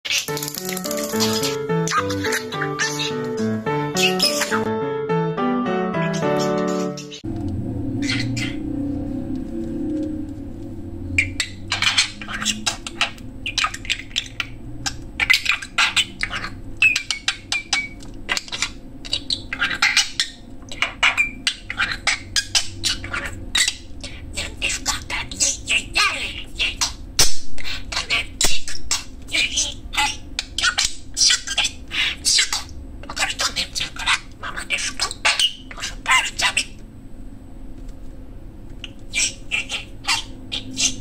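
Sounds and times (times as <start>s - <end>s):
budgerigar chattering and warbling: 0.1s - 4.7s, 6.0s - 7.2s, 8.0s - 8.6s, 11.2s - 36.8s, 38.8s - 41.0s
bird whistling: 0.9s - 4.7s, 6.0s - 7.2s, 8.0s - 8.6s, 11.1s - 24.5s, 38.8s - 41.0s.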